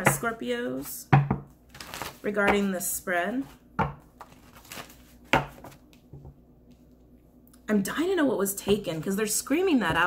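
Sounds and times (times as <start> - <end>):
cards rustling being shuffled: 4.2 - 6.0.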